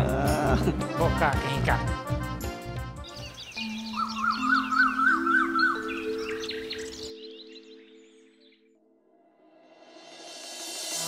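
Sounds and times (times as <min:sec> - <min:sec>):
birds chirping: 0:03.0 - 0:08.9.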